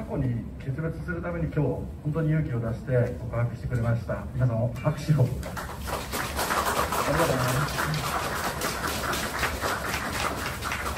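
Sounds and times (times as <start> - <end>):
audience applauding: 5.4 - 10.9.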